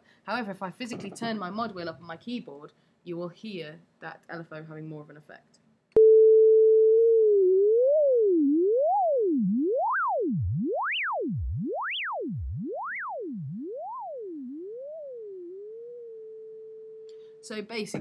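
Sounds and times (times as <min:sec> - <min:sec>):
synthesizer tone swooping in pitch: 0:06.7 - 0:17.1.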